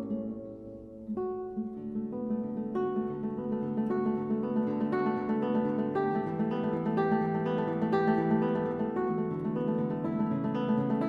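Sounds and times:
classical guitar fingerpicking: 0.0 - 11.0.

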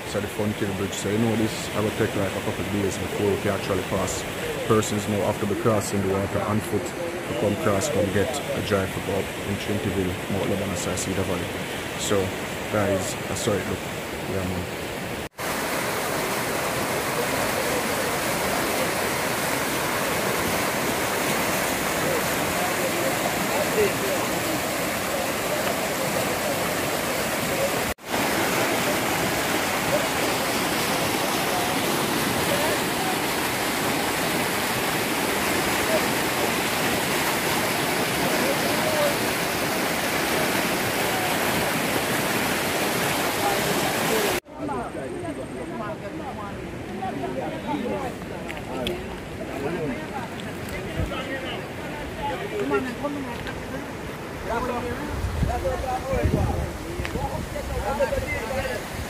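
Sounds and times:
river rushing over rocks: 0.0 - 9.5, 10.1 - 44.7, 46.5 - 59.0.

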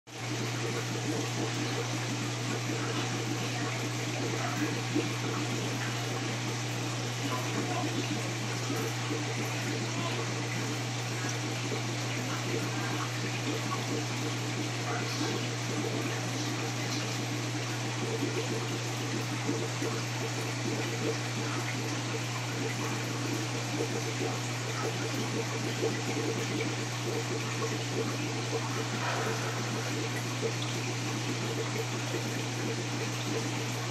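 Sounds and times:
aquarium equipment hum: 0.1 - 33.9
bubbling and trickling water: 0.1 - 33.9.

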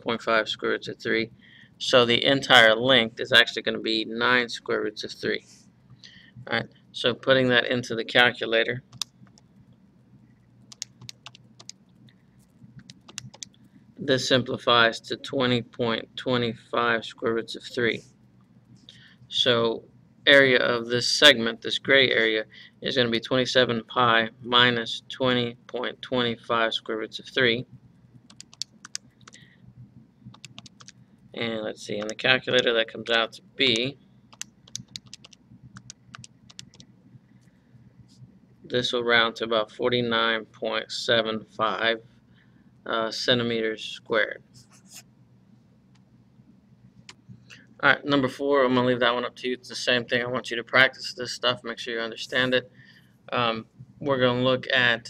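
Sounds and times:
calculator keys clicking: 12.8 - 13.6, 28.3 - 29.4, 30.3 - 30.9, 33.8 - 36.8.

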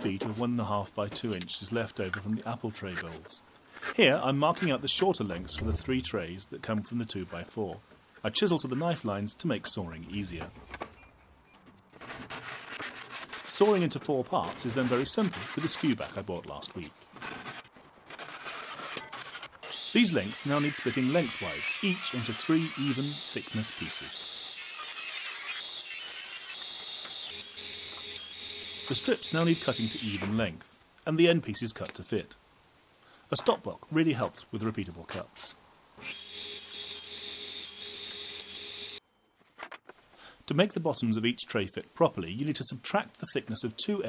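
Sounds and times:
handsaw rasping through wood: 18.4 - 24.2
table saw cutting wood: 18.4 - 30.4, 36.0 - 39.0.

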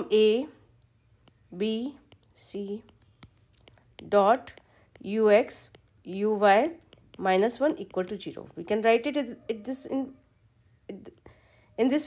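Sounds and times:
stylus tapping on glass screen: 0.8 - 8.4.

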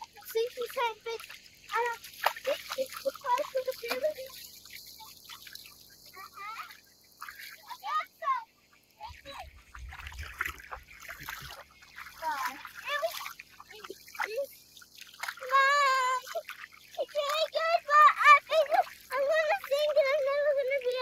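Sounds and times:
feet splashing through water: 0.0 - 21.0.

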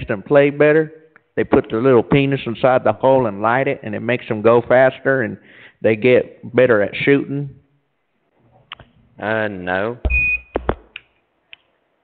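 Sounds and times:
electronic beep: 10.1 - 10.6.

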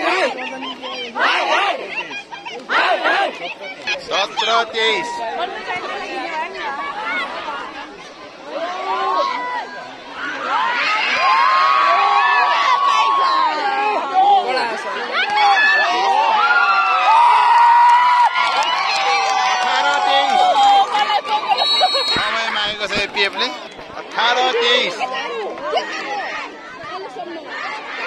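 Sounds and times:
crowd cheering and shouting: 0.0 - 28.0.

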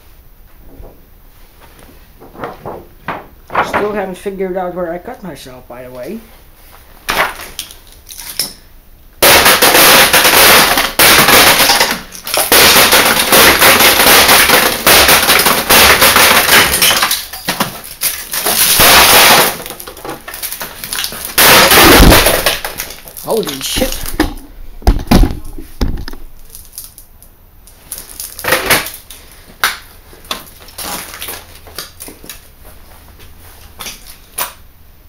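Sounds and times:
glass shards crunching: 7.6 - 8.6, 9.4 - 24.2, 26.4 - 27.0, 27.8 - 29.1.

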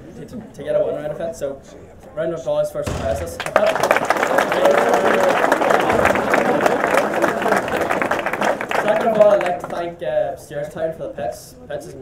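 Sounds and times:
voices: 2.8 - 12.0
crowd clapping: 3.1 - 9.9.

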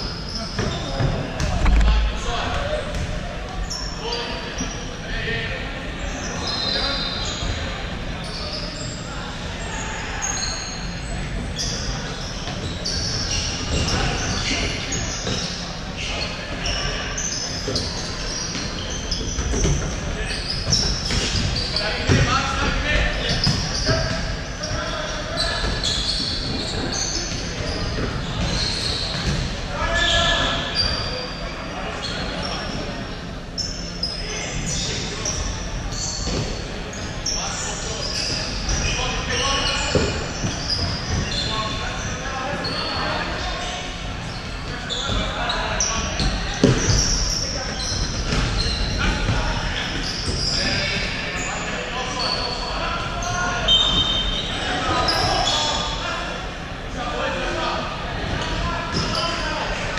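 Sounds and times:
shoes squeaking: 9.6 - 31.4, 32.0 - 56.0.

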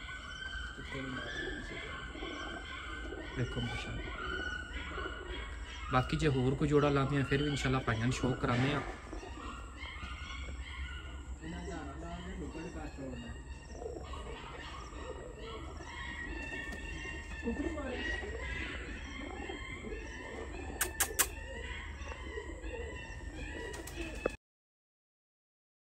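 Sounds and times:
bird chirps: 0.0 - 24.4
pigeons cooing: 0.0 - 24.4
sharp clicks: 20.8 - 21.3.

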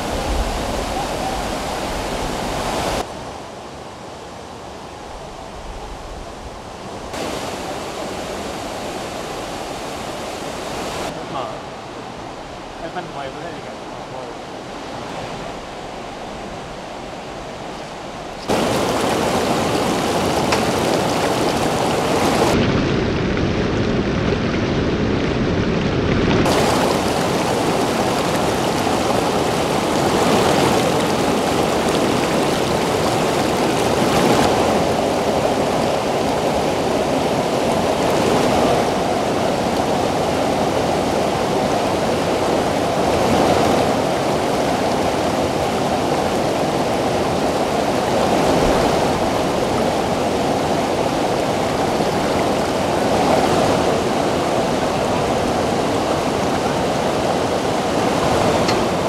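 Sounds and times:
river rushing over rocks: 0.0 - 4.4, 6.6 - 22.6, 26.4 - 59.0.

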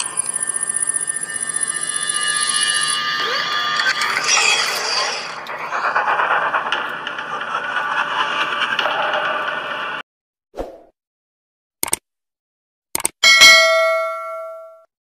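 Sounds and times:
trilling bell-like ringing: 0.0 - 4.4, 13.2 - 14.9
sweeping shimmer: 0.0 - 6.1.

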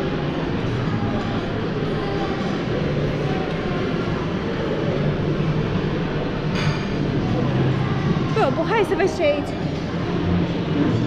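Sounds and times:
murmur of many voices: 0.0 - 11.0.

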